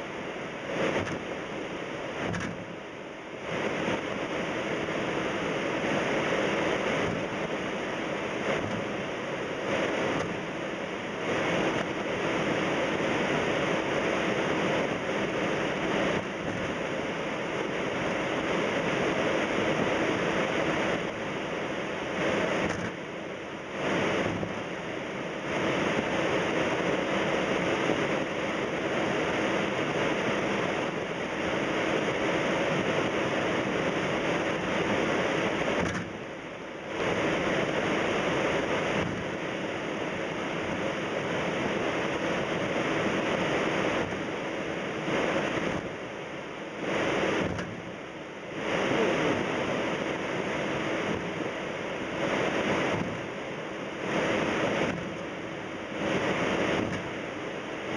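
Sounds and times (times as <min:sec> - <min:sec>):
air conditioning rushing noise: 0:00.0 - 0:57.9.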